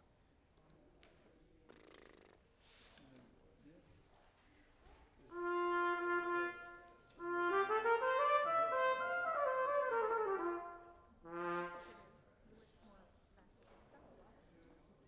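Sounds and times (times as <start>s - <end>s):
brass instrument playing scales: 5.3s - 12.2s.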